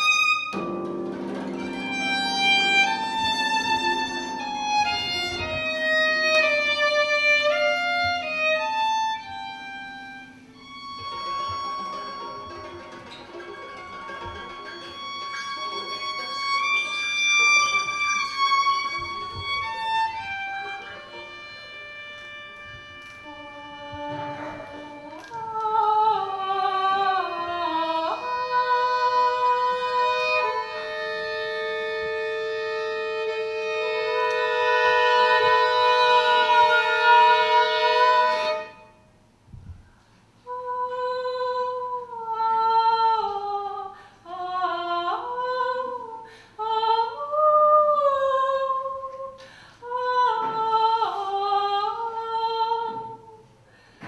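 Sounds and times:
violin and harp chamber piece: 0.0 - 39.1.

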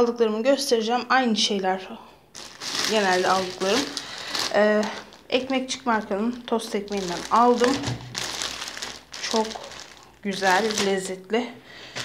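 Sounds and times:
plastic bread wrapper crinkling: 2.3 - 11.3.

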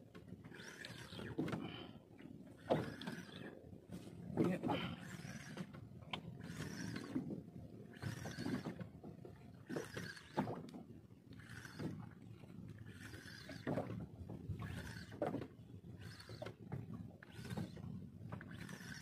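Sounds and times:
low rumble of water and wind: 0.0 - 19.0
fishing reel cranking: 0.5 - 1.4, 2.5 - 3.5, 4.8 - 5.7, 6.4 - 7.2, 7.8 - 8.8, 9.6 - 10.6, 11.3 - 12.1, 12.8 - 13.7, 14.6 - 15.2, 16.0 - 16.6, 17.2 - 19.0.

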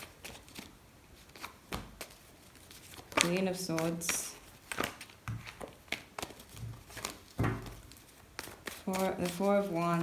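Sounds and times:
cards being shuffled: 0.0 - 10.0.

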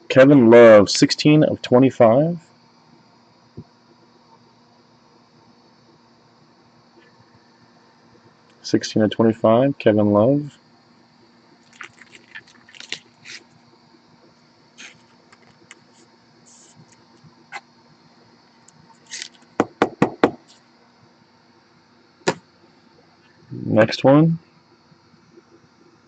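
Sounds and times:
sharp click: 22.2 - 22.4.

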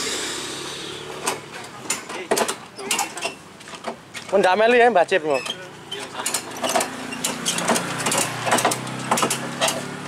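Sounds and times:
engine noise: 0.0 - 2.2, 5.8 - 10.0.

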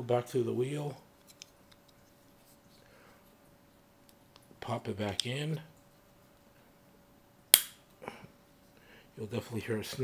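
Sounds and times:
sharp plastic snap: 7.5 - 7.8.

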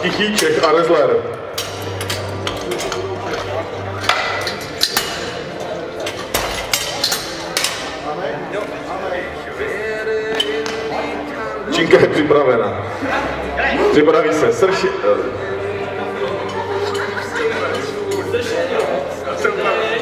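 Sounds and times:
background voices in a hall: 0.0 - 20.0.

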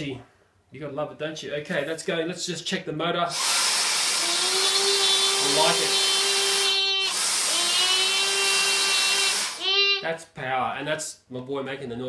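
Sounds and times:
stick vacuum motor whine: 3.3 - 9.7.

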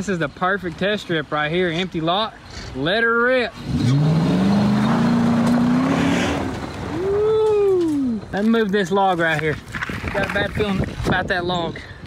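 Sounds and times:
car engine revving: 3.5 - 7.1.

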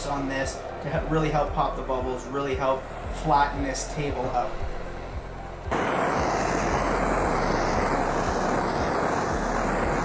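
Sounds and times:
gas torch flame hissing: 0.0 - 10.0.

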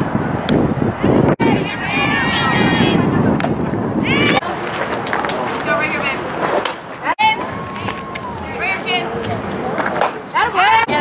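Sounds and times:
wind rumble on microphone: 0.0 - 6.4, 7.0 - 11.0.

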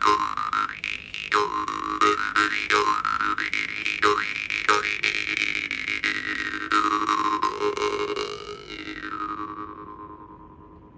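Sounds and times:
jaw harp drone and melody: 0.0 - 10.9.

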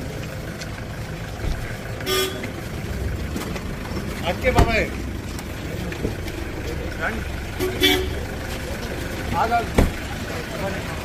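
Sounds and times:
vehicle engine rumble: 0.0 - 11.0
voices of people: 0.0 - 11.0
car horn toot: 2.0 - 2.6, 7.5 - 8.3.

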